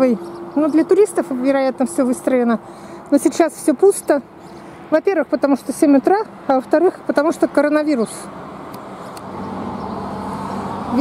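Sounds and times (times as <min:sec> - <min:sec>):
highway traffic passing: 0:00.0 - 0:11.0.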